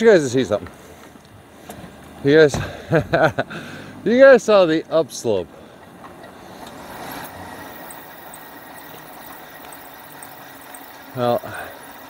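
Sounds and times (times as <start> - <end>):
bike tyres rolling on pavement: 6.7 - 12.0
light high ticks: 7.8 - 11.1.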